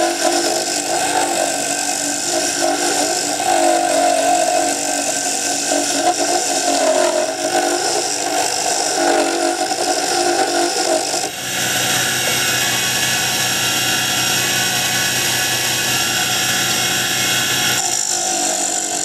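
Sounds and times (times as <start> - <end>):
lathe motor hum: 0.0 - 19.0.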